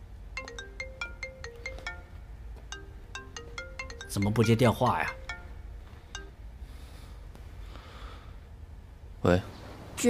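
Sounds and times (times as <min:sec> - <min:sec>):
mobile phone ringtone melody: 0:00.4 - 0:06.4.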